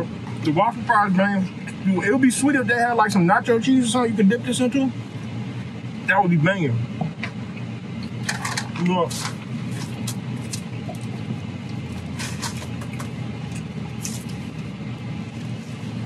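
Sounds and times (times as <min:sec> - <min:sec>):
low car cabin hum: 0:00.0 - 0:16.0
crunching fries: 0:08.1 - 0:16.0.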